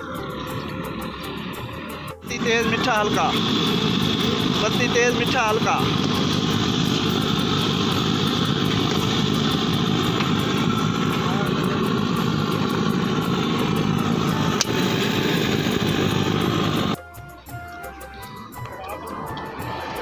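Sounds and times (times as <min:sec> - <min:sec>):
stove burner roaring: 0:00.0 - 0:20.0.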